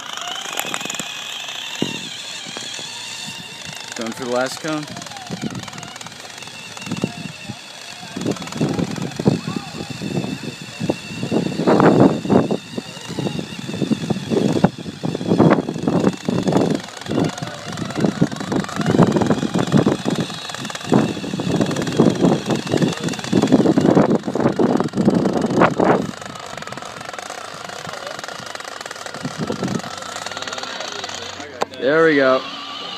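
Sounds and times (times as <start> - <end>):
rattling and clatter on asphalt: 0.0 - 32.3
toy car motor whine: 0.0 - 32.9.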